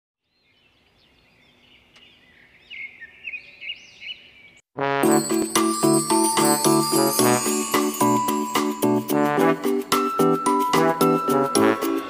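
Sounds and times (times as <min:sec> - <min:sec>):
birds chirping and singing: 0:00.3 - 0:04.6.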